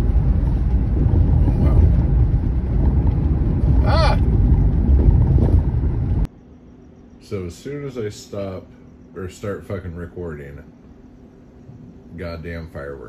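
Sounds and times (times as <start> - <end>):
car road and engine rumble: 0.0 - 12.8.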